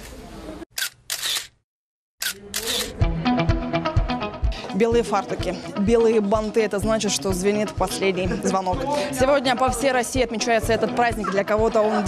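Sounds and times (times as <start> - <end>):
camera shutters clicking: 0.8 - 1.6, 2.2 - 3.0
music with steady beat: 2.9 - 11.9.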